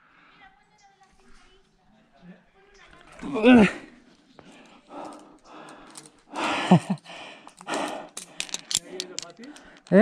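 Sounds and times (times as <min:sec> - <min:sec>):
person breathing hard: 0:04.5 - 0:09.9
carabiners clinking on metal: 0:04.6 - 0:10.0.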